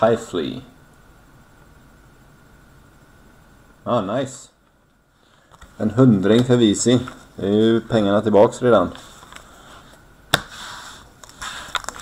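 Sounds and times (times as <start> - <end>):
cards shuffling: 10.3 - 12.0.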